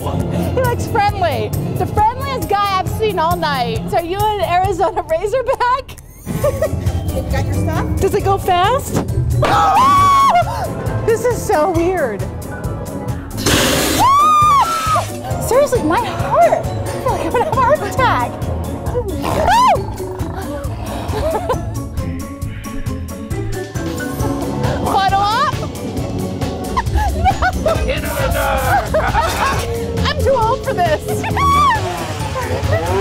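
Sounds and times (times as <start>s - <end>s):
haunted-house background music: 0.0s - 4.7s, 6.0s - 33.0s
woman screaming: 9.4s - 10.6s, 14.0s - 15.1s, 31.2s - 32.0s
hissing noise burst: 13.4s - 15.2s
vocal yelps and squeals: 18.9s - 21.6s.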